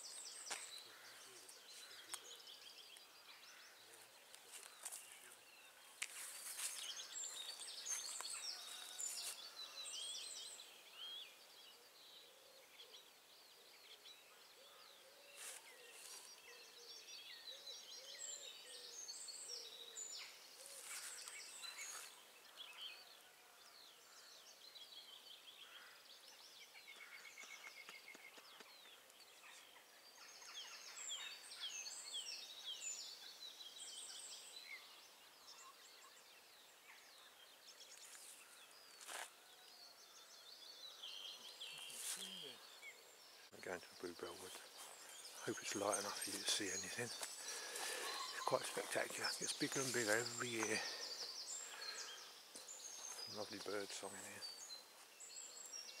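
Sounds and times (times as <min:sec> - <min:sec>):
songbirds singing: 0:00.0 - 0:56.0.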